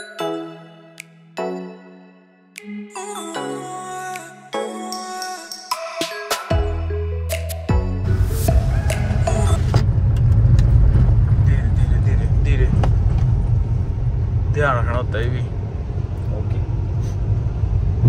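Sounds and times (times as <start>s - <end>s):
car cabin road noise: 8.4s - 18.0s.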